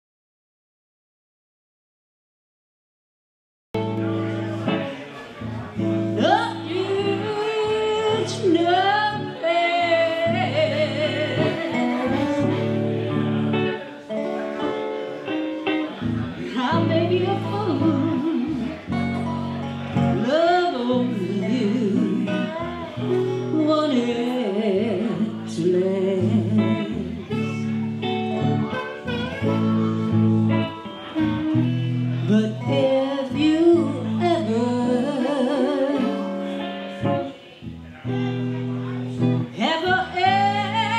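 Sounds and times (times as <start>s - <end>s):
electric guitar: 3.8s - 40.9s
lap steel guitar: 3.8s - 40.9s
woman singing: 6.2s - 12.9s, 16.5s - 18.8s, 20.2s - 22.8s, 23.4s - 27.2s, 32.2s - 36.6s, 39.6s - 40.9s
harmonica: 10.1s - 13.8s, 28.4s - 32.2s.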